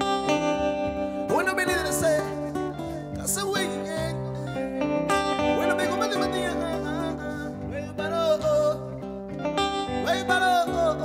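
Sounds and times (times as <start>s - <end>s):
guitars playing: 0.0s - 11.0s
person singing: 0.1s - 11.0s.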